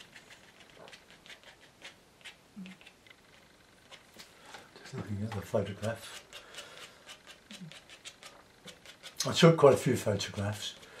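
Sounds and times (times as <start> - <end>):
plastic card scraping paper: 0.0 - 4.3, 4.9 - 11.0.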